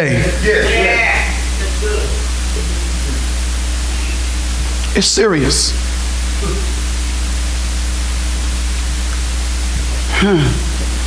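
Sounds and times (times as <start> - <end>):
electrical hum: 0.0 - 11.0
steady hiss: 0.0 - 11.0.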